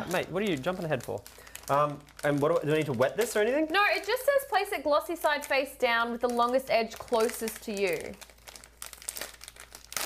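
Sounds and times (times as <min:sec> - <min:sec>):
seaweed sheets crinkling: 0:00.0 - 0:04.1, 0:05.2 - 0:10.0.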